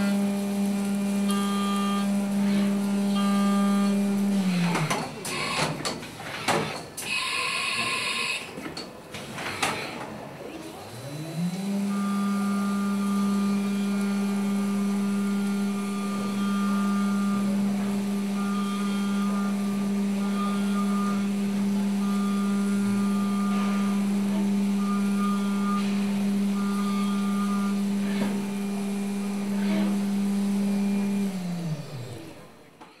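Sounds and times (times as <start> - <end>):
high whine of cutting tool: 0.0 - 5.8, 10.8 - 32.7
milling machine spindle running: 0.0 - 7.2, 10.6 - 33.0.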